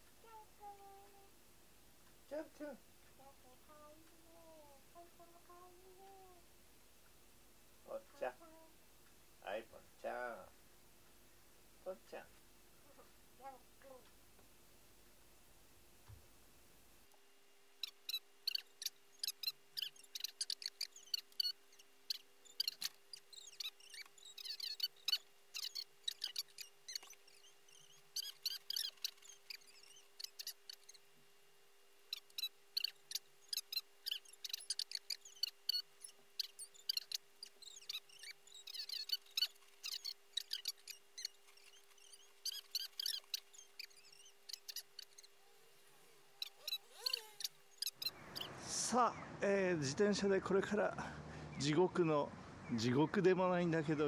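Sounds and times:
steady hum: 0.0 - 51.3
high-pitched chirping squeaks: 17.8 - 31.1, 32.0 - 48.6.

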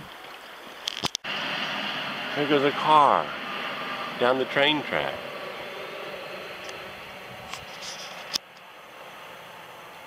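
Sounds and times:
vehicle rumbling on railroad track: 1.2 - 10.0.

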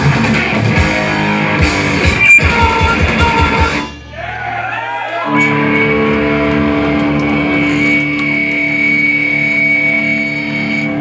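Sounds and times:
loud live band music: 0.0 - 4.6, 5.2 - 11.0
electric guitar sustained notes: 5.2 - 11.0.

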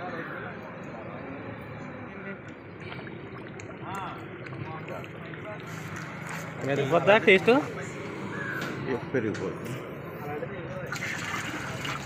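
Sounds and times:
faint voices talking: 0.0 - 12.0
steady outdoor hiss: 0.0 - 12.0.

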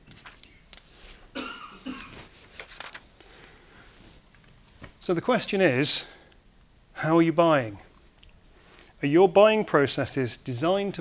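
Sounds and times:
person coughing: 1.3 - 2.3.

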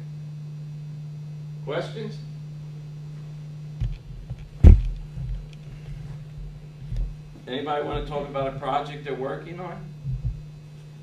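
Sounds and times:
faint steady hum: 0.0 - 11.0
sharp low thump: 3.8 - 5.5, 10.0 - 10.6
soft low rumbles and bumps: 3.8 - 11.0.

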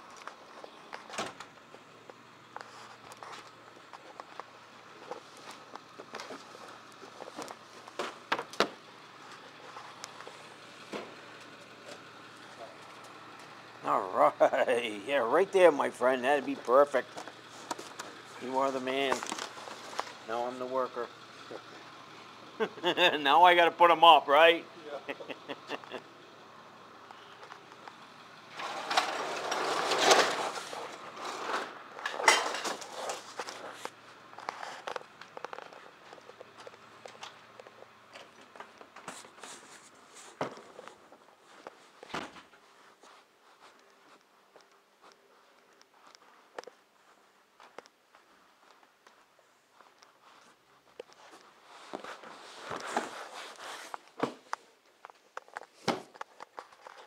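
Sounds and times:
footsteps: 30.1 - 57.0.

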